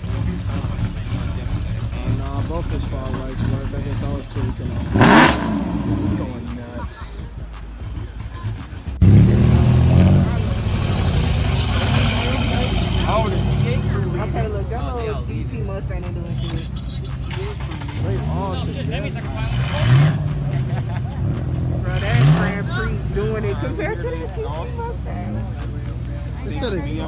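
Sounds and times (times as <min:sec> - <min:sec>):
car engines revving: 0:00.0 - 0:27.0
voices: 0:00.0 - 0:27.0.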